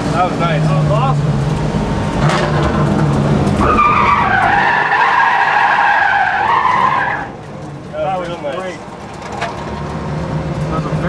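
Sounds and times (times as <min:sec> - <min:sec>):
car engine running: 0:00.0 - 0:11.0
tyres squealing: 0:01.9 - 0:09.7.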